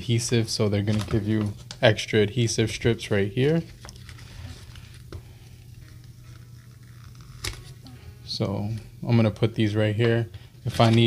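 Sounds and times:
low steady hum: 0:00.0 - 0:11.0
paper rustling and crinkling: 0:00.1 - 0:02.0, 0:02.6 - 0:05.2, 0:10.7 - 0:11.0.

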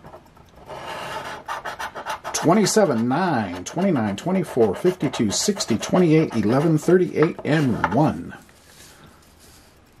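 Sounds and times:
coin scratching lottery ticket: 0:00.0 - 0:08.1.

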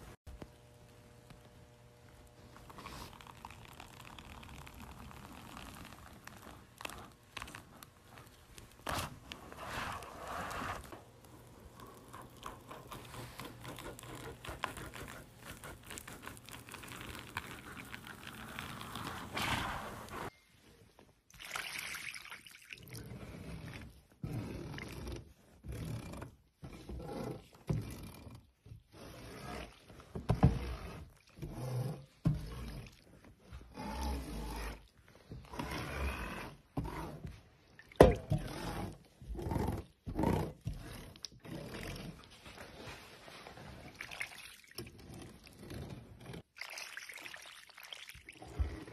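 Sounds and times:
metal scraper scraping wax: 0:05.4 - 0:20.3.

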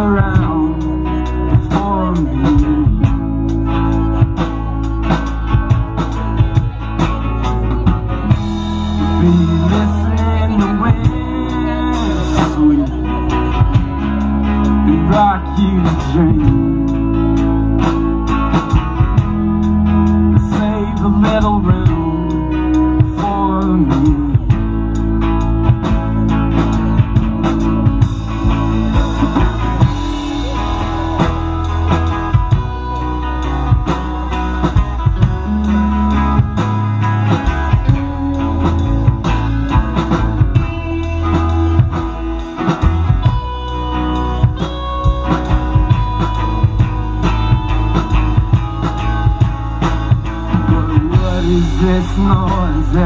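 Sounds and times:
drum kit beat: 0:00.0 - 0:53.0
electric bass: 0:00.0 - 0:53.0
electric guitar lead: 0:00.0 - 0:53.0
strummed acoustic guitar: 0:00.0 - 0:53.0.

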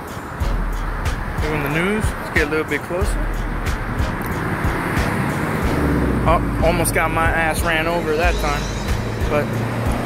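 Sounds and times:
street traffic noise: 0:00.0 - 0:10.0
vehicle engine rumble close by: 0:00.4 - 0:10.0.

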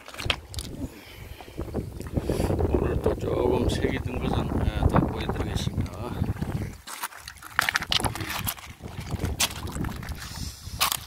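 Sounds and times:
wind rumble on microphone: 0:00.0 - 0:06.8, 0:07.6 - 0:11.0.

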